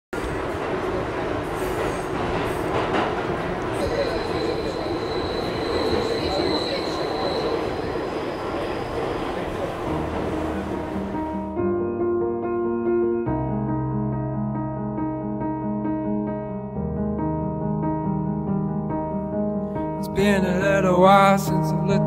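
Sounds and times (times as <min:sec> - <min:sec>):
subway train rumble: 0:00.1 - 0:11.6, 0:20.0 - 0:22.0
high wheel squeal: 0:03.8 - 0:09.2.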